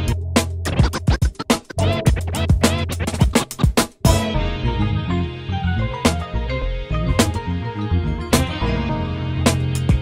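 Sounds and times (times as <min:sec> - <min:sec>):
vinyl record scratching: 0:00.0 - 0:04.6
hip-hop beat with bass: 0:00.0 - 0:10.0.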